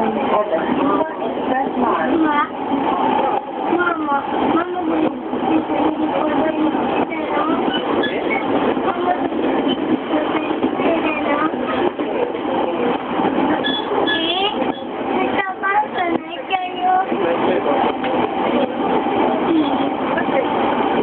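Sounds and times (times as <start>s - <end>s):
passengers chattering: 0.0s - 21.0s
train running noise from inside: 0.0s - 21.0s.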